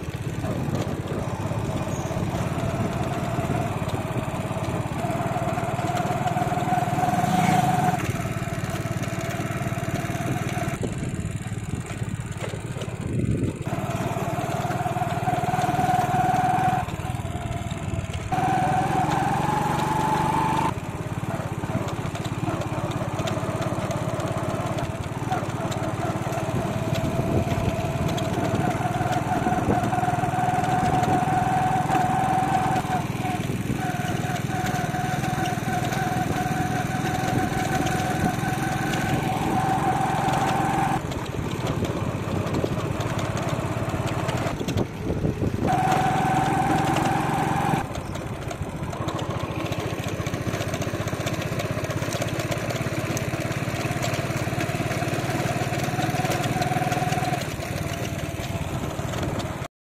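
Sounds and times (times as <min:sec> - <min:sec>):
small engine running: 0:00.0 - 0:59.7.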